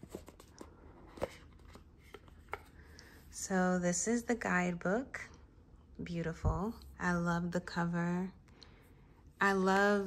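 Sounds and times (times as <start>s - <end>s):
cardboard box rustling: 0.0s - 2.7s.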